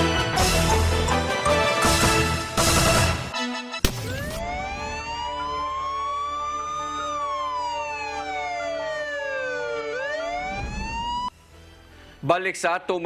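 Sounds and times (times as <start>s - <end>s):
siren wail: 4.0s - 11.4s.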